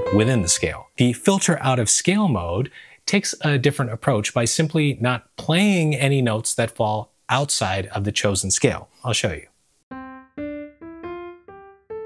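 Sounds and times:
piano notes climbing scale: 0:00.0 - 0:00.9, 0:09.9 - 0:12.0.

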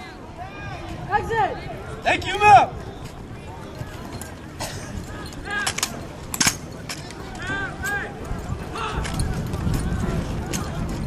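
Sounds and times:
onlookers talking: 0:00.0 - 0:11.0.

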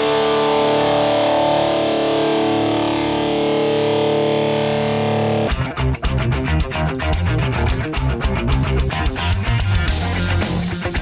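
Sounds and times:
distorted electric guitar chord: 0:00.0 - 0:11.0
fast rhythmic music: 0:05.5 - 0:11.0.

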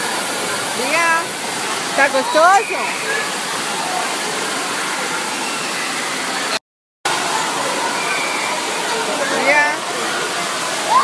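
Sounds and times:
fountain water rushing: 0:00.0 - 0:11.0.

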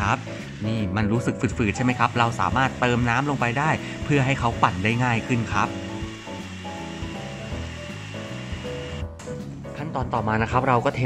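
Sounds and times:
electric blender running: 0:00.0 - 0:09.2
background music: 0:00.0 - 0:11.0.

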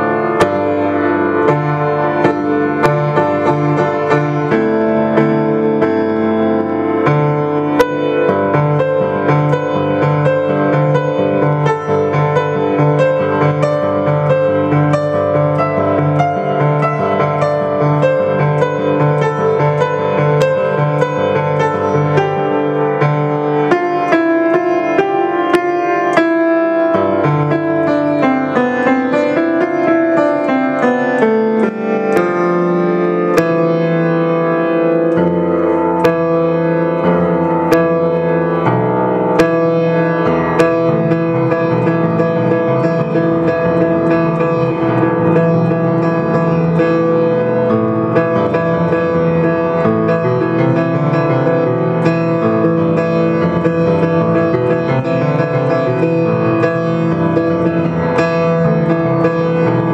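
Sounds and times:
grand piano playing chords: 0:00.0 - 0:59.9.

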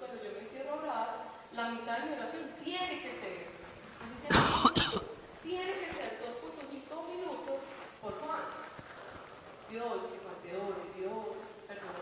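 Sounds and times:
person coughing harshly: 0:04.3 - 0:05.1
person speaking: 0:04.3 - 0:05.2.

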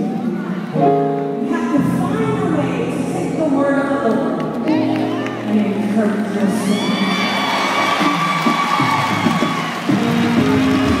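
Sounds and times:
keyboard playing gospel chords: 0:00.7 - 0:05.9
congregation cheering: 0:06.6 - 0:11.0.

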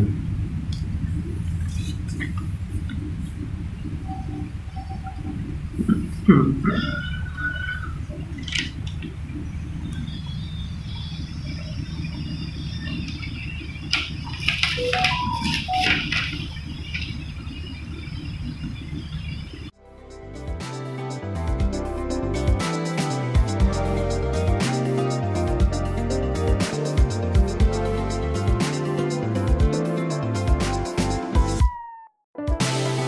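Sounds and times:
steady low hum: 0:00.0 - 0:20.4
person laughing: 0:05.8 - 0:08.2
paper pages rustling: 0:08.3 - 0:08.8, 0:13.9 - 0:17.3.

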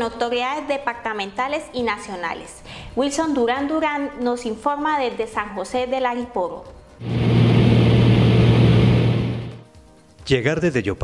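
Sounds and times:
aircraft engine droning in cabin: 0:07.0 - 0:09.6
air rushing noise: 0:07.0 - 0:09.7.

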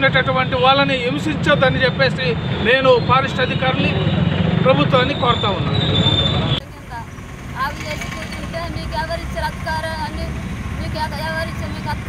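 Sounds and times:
man speaking: 0:00.0 - 0:05.7.

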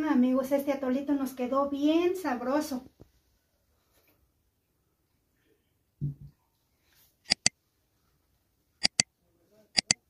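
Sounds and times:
mug set down on table: 0:06.0 - 0:06.4
mouse click sound effects: 0:07.3 - 0:07.5, 0:08.8 - 0:09.0, 0:09.8 - 0:10.0.

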